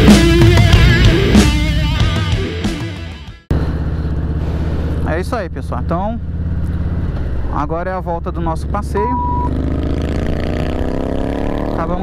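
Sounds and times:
motorcycle engine running: 3.5 - 12.0
short beep: 9.0 - 9.6.

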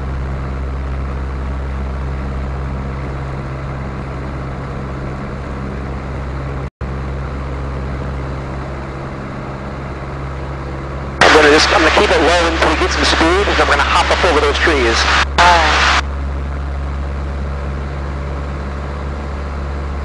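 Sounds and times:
propeller aircraft engine drone: 0.0 - 20.0.

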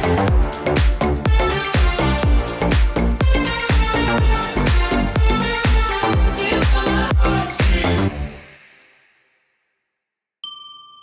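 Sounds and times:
interval timer chime: 10.4 - 11.0.

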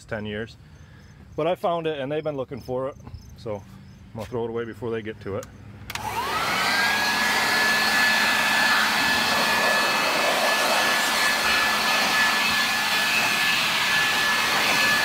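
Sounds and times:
vacuum cleaner running: 5.9 - 15.0.

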